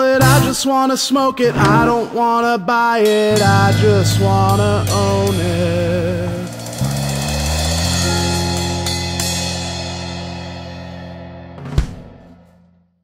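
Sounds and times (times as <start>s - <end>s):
person singing: 0.0s - 7.2s
drums and cymbals ringing: 3.0s - 12.2s
band holding final chord: 3.3s - 12.2s
sharp hit: 3.4s - 12.4s.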